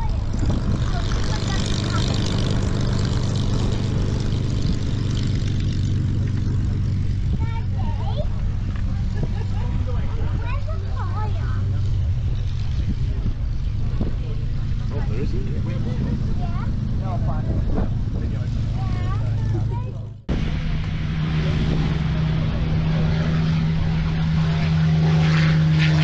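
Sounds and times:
people talking: 0:00.0 - 0:02.4, 0:07.3 - 0:11.8, 0:12.9 - 0:20.2, 0:21.4 - 0:25.2
piston aircraft engine droning: 0:00.0 - 0:26.0
wind on microphone: 0:00.0 - 0:26.0.

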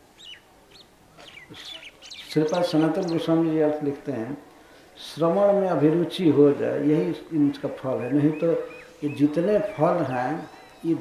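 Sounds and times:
bird chirping: 0:00.0 - 0:03.9, 0:06.9 - 0:11.0.

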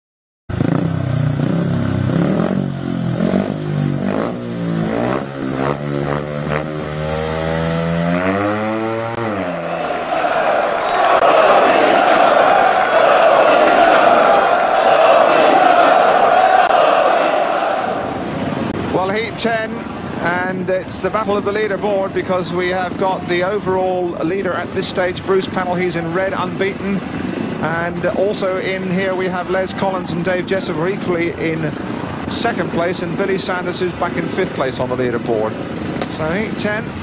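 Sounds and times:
motorcycle engines revving: 0:00.5 - 0:37.0
commentator speaking: 0:18.9 - 0:27.0, 0:27.6 - 0:37.0.

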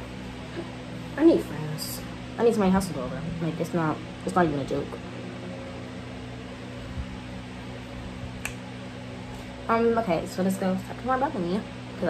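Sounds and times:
appliance hum with hiss: 0:00.0 - 0:12.0.

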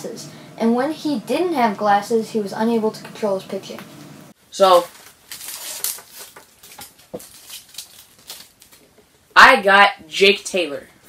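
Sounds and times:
plastic wrap crinkling: 0:04.6 - 0:09.1.

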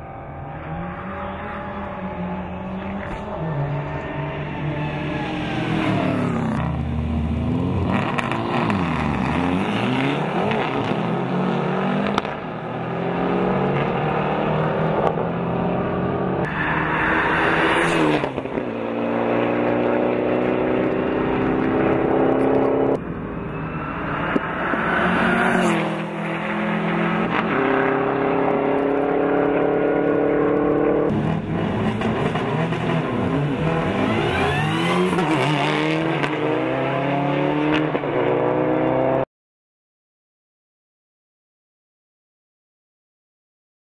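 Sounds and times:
cars passing close by: 0:00.0 - 0:39.2
rally car engines revving: 0:00.0 - 0:39.2.

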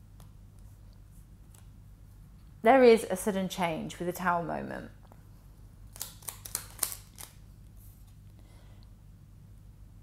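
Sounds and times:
crisp card clicks: 0:05.9 - 0:07.4.

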